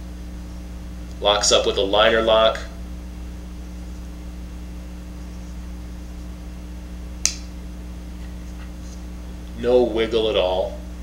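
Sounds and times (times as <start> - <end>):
low electrical hum: 0.0 - 11.0
folding knife click: 7.2 - 7.5.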